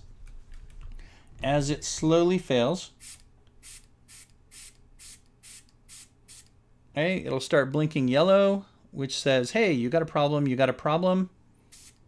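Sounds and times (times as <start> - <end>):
short air hisses at valve: 3.0 - 6.5, 11.7 - 12.0.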